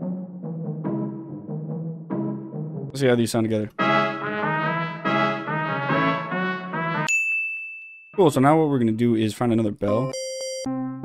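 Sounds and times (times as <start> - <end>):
high steady beep: 9.9 - 10.7.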